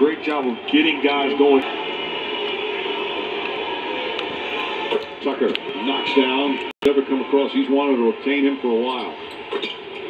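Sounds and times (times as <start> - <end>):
arena crowd noise on television: 0.0 - 10.0.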